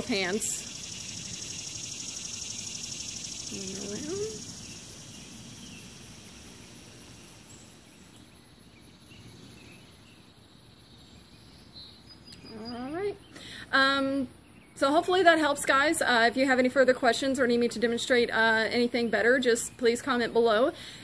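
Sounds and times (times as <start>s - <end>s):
insect drone: 0.0s - 11.1s.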